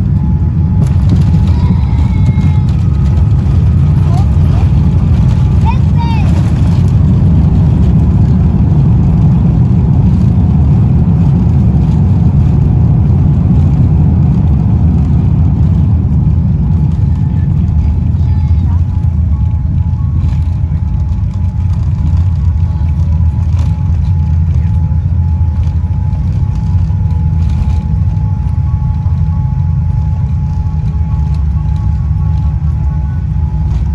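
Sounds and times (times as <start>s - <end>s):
aircraft cabin rumble: 0.0s - 33.9s.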